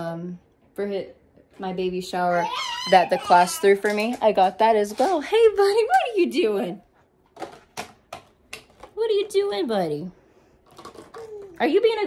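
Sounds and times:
plastic bottles clicking: 3.6s - 5.2s, 10.6s - 11.6s.

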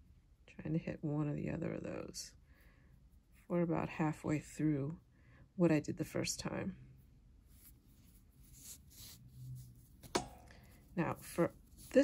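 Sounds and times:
yarn rubbing and rustling: 7.4s - 12.0s.

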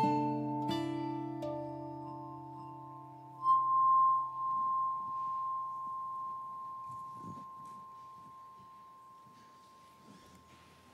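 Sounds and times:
glass instrument high note: 0.6s - 10.8s.

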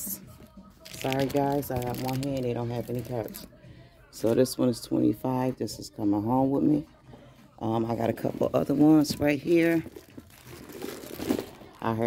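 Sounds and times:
plastic wrapping crinkling: 0.8s - 3.4s, 8.4s - 12.0s
woman speaking: 0.9s - 3.5s, 4.2s - 6.9s, 7.6s - 10.0s, 11.7s - 12.0s.

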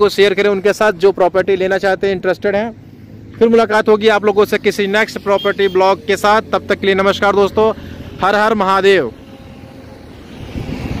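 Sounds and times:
highway traffic: 0.0s - 11.0s.

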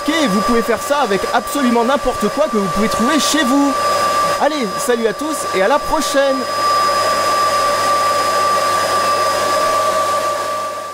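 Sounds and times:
vacuum cleaner motor whine: 0.0s - 10.9s.

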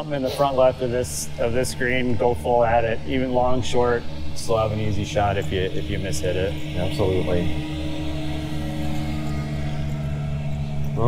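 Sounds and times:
golf cart motor drone: 0.0s - 11.0s.

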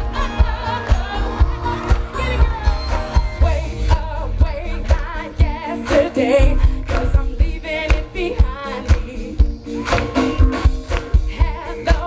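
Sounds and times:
live pop band playing: 0.0s - 12.0s
woman singing: 0.0s - 12.0s.

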